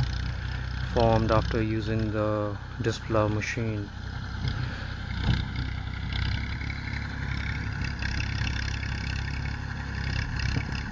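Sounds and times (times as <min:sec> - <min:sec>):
tractor engine under load: 0:00.0 - 0:10.9.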